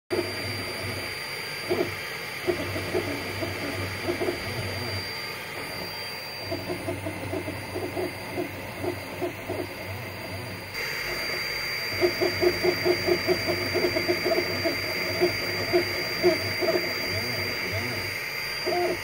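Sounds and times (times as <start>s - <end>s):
faint high whine: 0.1s - 19.0s
low machine hum: 0.1s - 19.0s
stepper motor tones: 0.1s - 19.0s.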